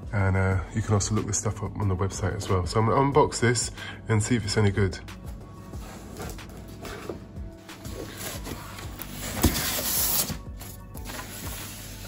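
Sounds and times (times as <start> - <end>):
background music: 0.0 - 12.0
cardboard box being opened: 5.8 - 12.0.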